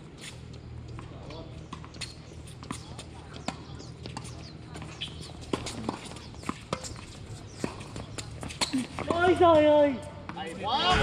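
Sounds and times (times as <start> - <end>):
tennis ball bouncing on hard court: 0.9 - 9.6.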